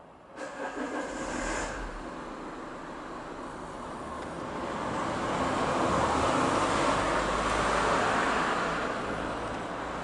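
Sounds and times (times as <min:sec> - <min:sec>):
steady traffic hum: 0:00.0 - 0:10.0.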